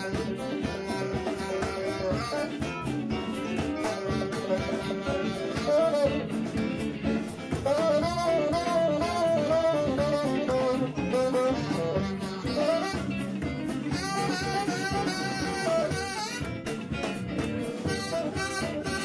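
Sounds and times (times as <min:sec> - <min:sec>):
bass guitar: 0:00.0 - 0:19.0
drums: 0:00.0 - 0:19.0
electric guitar: 0:00.0 - 0:19.0
saxophone solo: 0:00.0 - 0:19.0.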